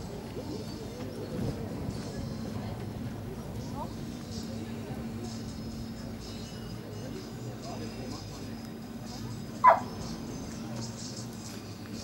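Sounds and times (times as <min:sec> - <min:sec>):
faint background voices: 0:00.0 - 0:12.0
dog barking: 0:09.6 - 0:10.0.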